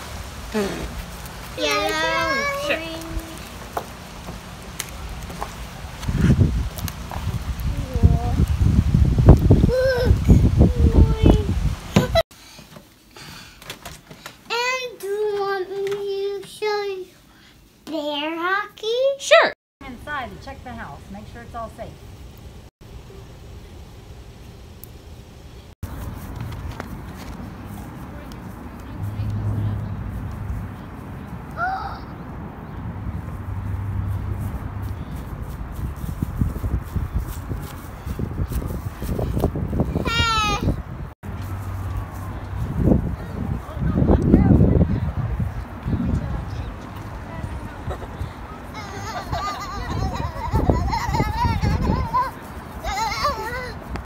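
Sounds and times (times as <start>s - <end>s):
low outdoor rumble: 0.0s - 12.2s, 19.8s - 54.0s
young child singing wordlessly: 1.6s - 2.8s, 14.5s - 17.2s.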